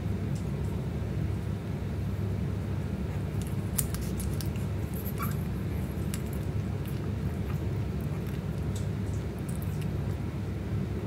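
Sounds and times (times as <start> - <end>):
steady low rumble: 0.0 - 11.0
puppies stirring clicks: 3.4 - 10.2
puppy high squeak: 5.0 - 5.5.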